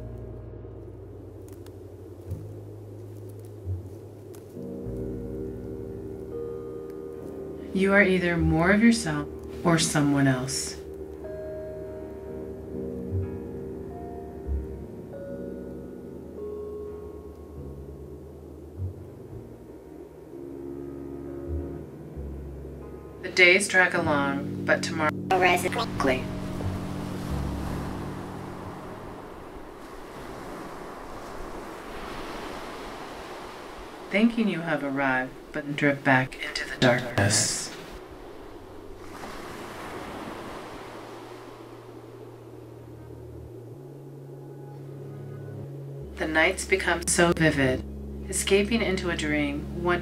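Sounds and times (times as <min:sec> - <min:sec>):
deep ambient drone: 0:00.0 - 0:34.6, 0:35.2 - 0:50.0
higher sustained tones: 0:24.0 - 0:35.5
waves washing on water: 0:25.3 - 0:43.4.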